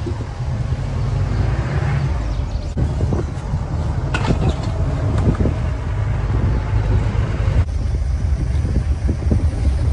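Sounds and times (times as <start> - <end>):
vehicle engine and road rumble: 0.0 - 9.9
wind on microphone: 1.9 - 9.9.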